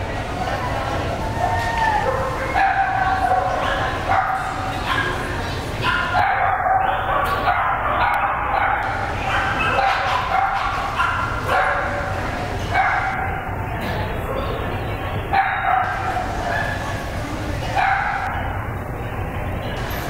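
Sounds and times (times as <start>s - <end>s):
people talking: 0.0s - 20.0s
dog yipping and barking: 5.8s - 12.0s.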